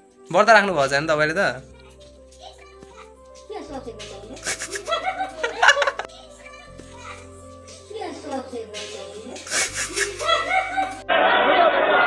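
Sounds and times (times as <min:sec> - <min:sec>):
music: 0:00.0 - 0:12.0
children talking: 0:00.4 - 0:11.1.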